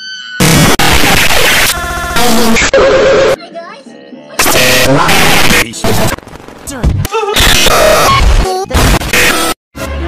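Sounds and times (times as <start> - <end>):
buzzy stuttering tone: 0.4 - 3.4, 4.4 - 6.8
harsh distorted noise blast: 0.4 - 3.4, 4.4 - 9.6.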